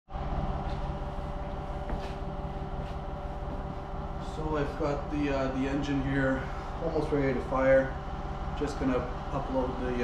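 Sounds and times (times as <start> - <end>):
machine hum with held tones: 0.1 - 10.0.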